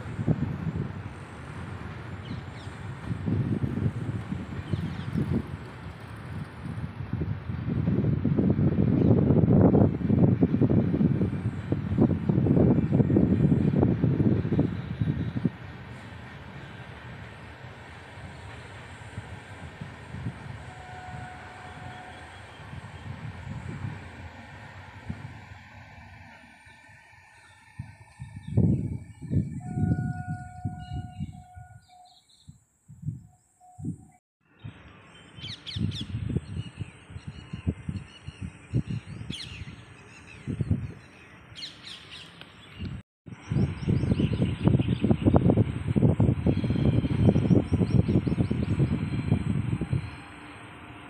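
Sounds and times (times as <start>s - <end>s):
distant train rumbling past: 0.0s - 32.2s, 43.3s - 51.0s
wind buffeting microphone: 0.0s - 34.2s, 35.4s - 51.0s.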